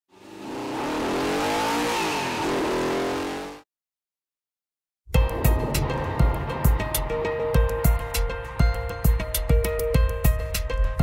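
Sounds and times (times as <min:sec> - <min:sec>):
car engine revving hard: 0:00.1 - 0:03.6.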